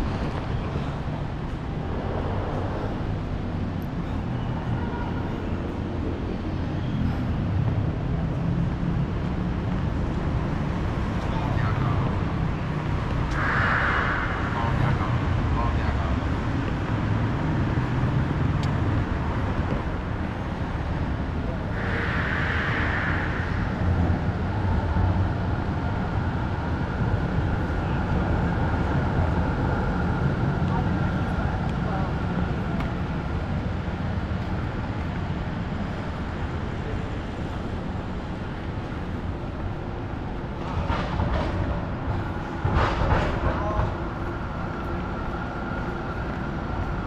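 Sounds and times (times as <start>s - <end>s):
passing car traffic: 0.0s - 47.0s.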